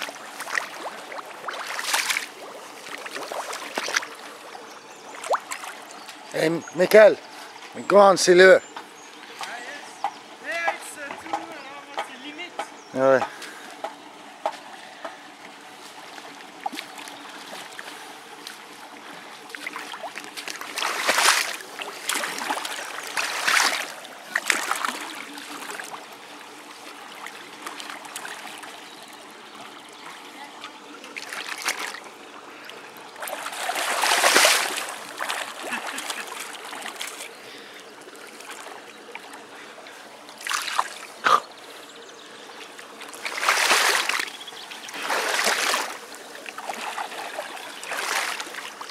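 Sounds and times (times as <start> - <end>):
fish splashing in water: 0.0 - 6.2, 16.2 - 29.2, 31.1 - 32.1, 32.7 - 39.4, 40.3 - 41.5, 42.9 - 48.9
water trickling: 0.0 - 12.2, 14.7 - 48.9.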